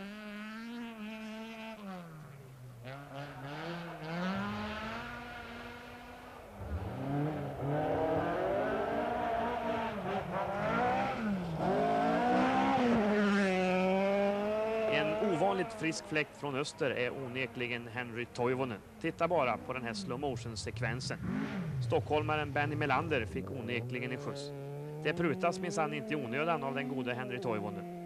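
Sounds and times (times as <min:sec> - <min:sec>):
rally car engines revving: 0:00.0 - 0:28.0.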